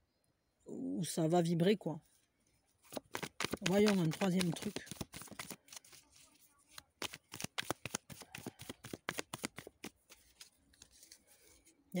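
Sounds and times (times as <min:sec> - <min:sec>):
cards being shuffled: 0:02.8 - 0:11.7.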